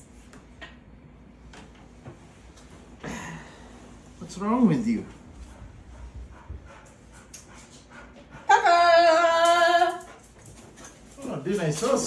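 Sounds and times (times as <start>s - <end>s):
dog howling: 8.5s - 10.1s.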